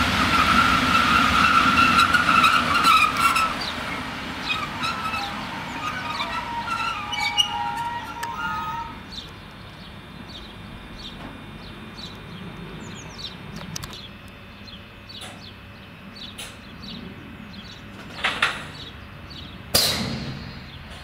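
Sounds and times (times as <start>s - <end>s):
locomotive rolling past: 0.0s - 13.9s
high metallic squeal: 0.3s - 3.8s, 4.4s - 9.2s
birds chirping: 3.2s - 19.8s.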